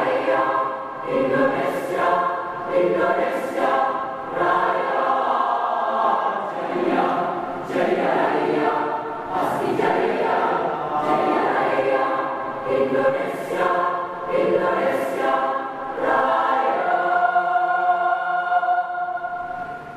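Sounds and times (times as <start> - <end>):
mixed choir singing in harmony: 0.0 - 19.9.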